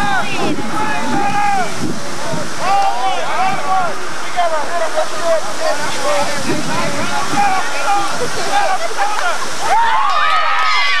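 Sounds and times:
distant indistinct voices: 0:00.0 - 0:11.0
steady rushing noise: 0:00.0 - 0:11.0.

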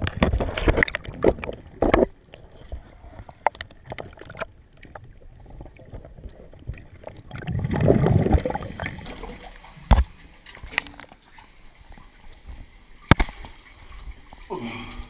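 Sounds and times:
water splashing and gurgling: 0:00.0 - 0:15.0.

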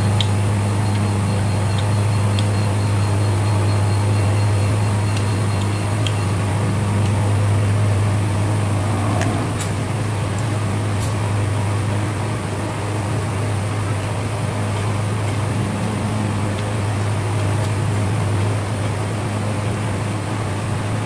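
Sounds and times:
fan motor hum: 0:00.0 - 0:21.0.

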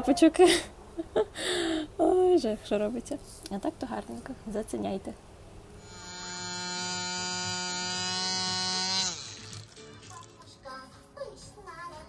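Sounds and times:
tattoo machine buzzing: 0:05.8 - 0:10.2.

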